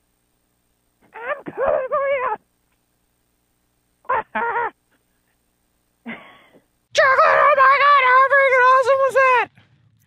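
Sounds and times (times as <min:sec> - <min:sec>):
man yelling high-pitched: 0:01.2 - 0:02.4, 0:06.9 - 0:09.5.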